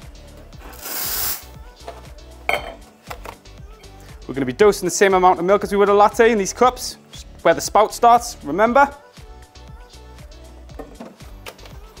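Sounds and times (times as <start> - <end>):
faint background music: 0.0 - 12.0
steam wand hissing: 0.7 - 1.5
crockery clinking and knocking: 2.5 - 2.8.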